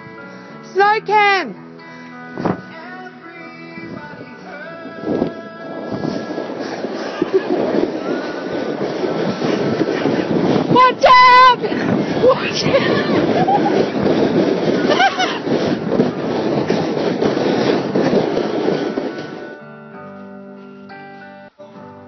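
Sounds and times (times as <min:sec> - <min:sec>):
wind on microphone: 0:02.2 - 0:20.3
high-pitched shout: 0:10.7 - 0:13.2.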